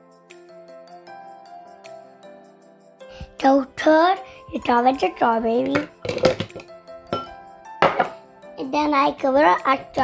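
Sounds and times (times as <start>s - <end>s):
background music: 0.0s - 10.0s
glass bowl knocked down: 5.8s - 8.2s
frozen fruit clattering into blender: 5.9s - 6.7s.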